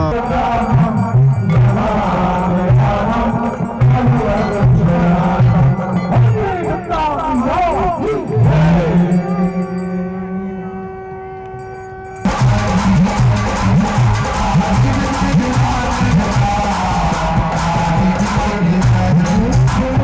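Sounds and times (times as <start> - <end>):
group singing: 0.0 - 6.8, 7.4 - 10.0, 12.3 - 20.0
rhythmic percussion: 0.0 - 10.6, 11.5 - 20.0
long held musical note: 8.2 - 13.0.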